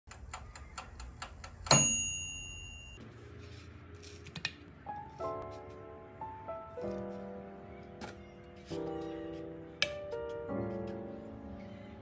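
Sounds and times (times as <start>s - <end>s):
timer bell ringing: 1.7s - 3.0s.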